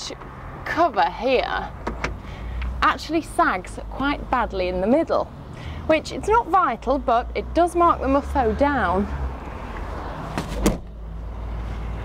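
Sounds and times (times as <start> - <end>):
tailgate knock: 10.4 - 10.9
tailgate slamming shut: 10.4 - 10.9.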